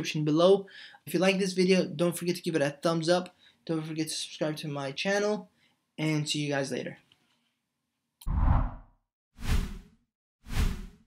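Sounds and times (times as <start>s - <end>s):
whoosh sound effects: 8.2s - 9.9s.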